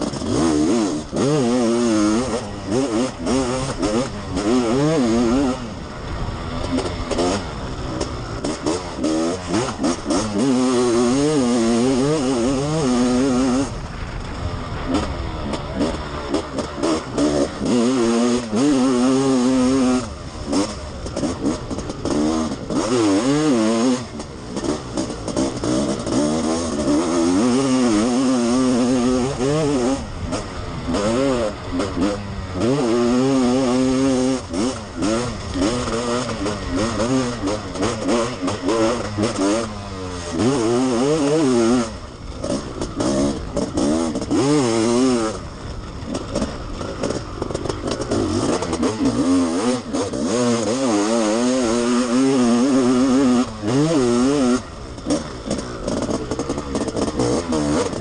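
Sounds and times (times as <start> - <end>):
motocross engine revving: 0.0 - 58.0.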